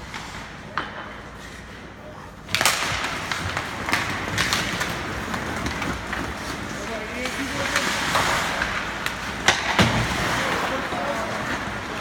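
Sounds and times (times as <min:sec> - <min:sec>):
hockey sticks clacking: 0:00.0 - 0:01.8, 0:02.4 - 0:12.0
skate blades scraping ice: 0:02.6 - 0:12.0.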